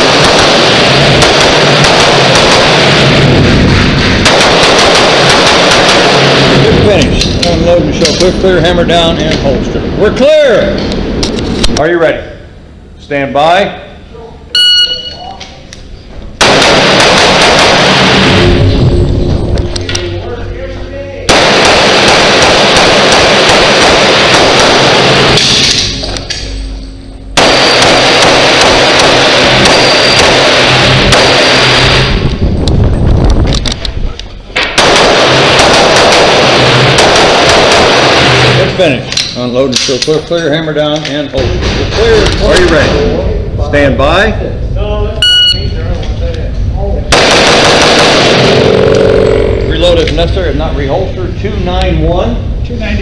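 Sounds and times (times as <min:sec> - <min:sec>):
pistol gunfire echoing indoors: 0:00.0 - 0:08.3, 0:16.4 - 0:18.6, 0:21.3 - 0:26.6, 0:27.4 - 0:32.2, 0:34.6 - 0:38.6, 0:47.1 - 0:48.8.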